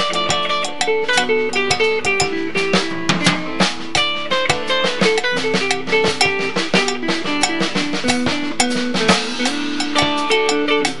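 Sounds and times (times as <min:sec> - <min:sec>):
live salsa band playing: 0:00.0 - 0:11.0.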